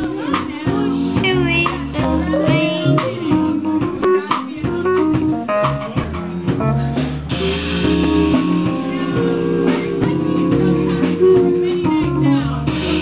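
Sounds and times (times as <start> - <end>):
bass line: 0.0 - 13.0
jazz band playing: 0.0 - 13.0.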